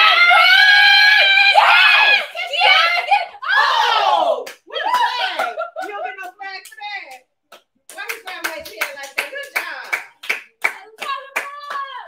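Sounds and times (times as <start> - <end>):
person cheering: 0.0 - 5.7
people clapping: 3.8 - 12.0.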